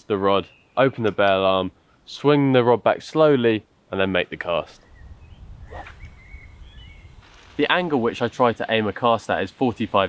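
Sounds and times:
faint bird chirps: 0.4 - 1.0, 4.7 - 7.2.

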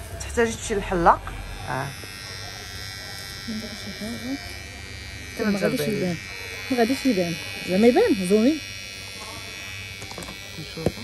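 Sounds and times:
electric hair clipper buzzing: 0.0 - 11.0.

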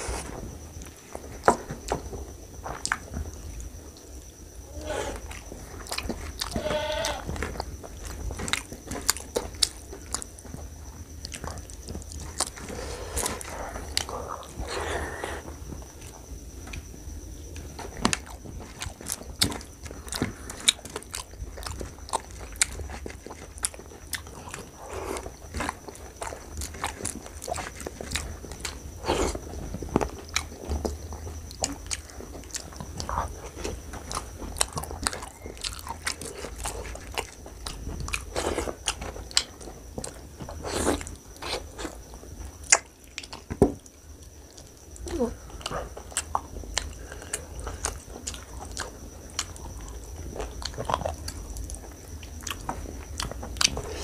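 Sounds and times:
person chewing food: 4.8 - 16.1, 17.5 - 54.0.

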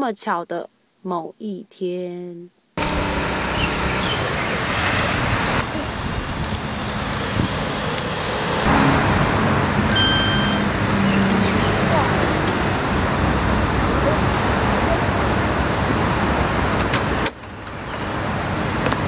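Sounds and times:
street traffic: 2.8 - 19.0
short high beep: 9.9 - 10.7.

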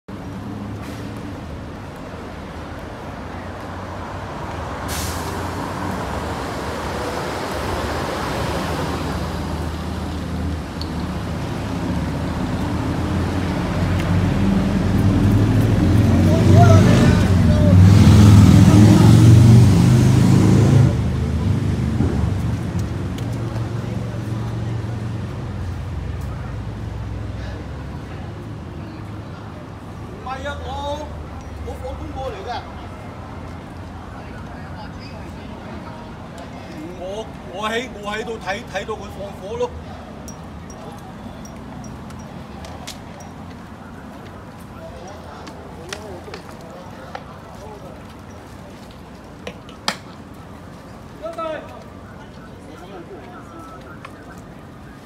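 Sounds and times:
city street traffic: 0.1 - 55.0
heavy vehicle passing: 3.1 - 28.3.

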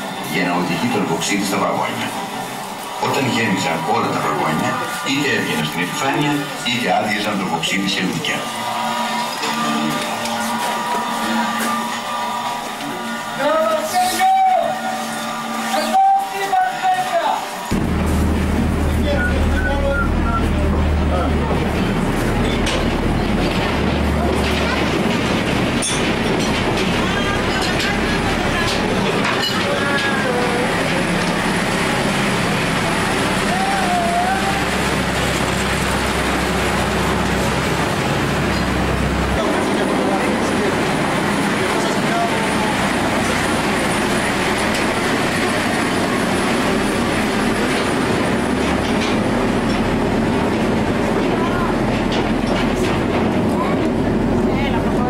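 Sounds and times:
train wheels on rails: 0.0 - 55.0.

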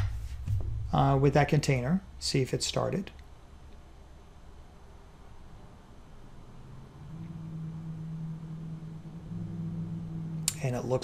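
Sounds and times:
faint background noise: 0.0 - 11.0
low steady hum: 0.0 - 11.0.

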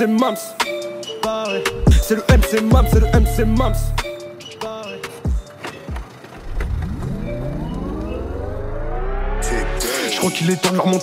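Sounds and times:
deep bass: 2.8 - 4.0, 6.5 - 9.9
rising pitched tone: 6.4 - 9.9.

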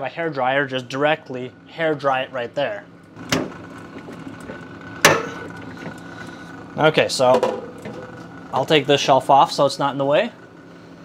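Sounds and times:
freezer fan humming: 0.0 - 11.0.

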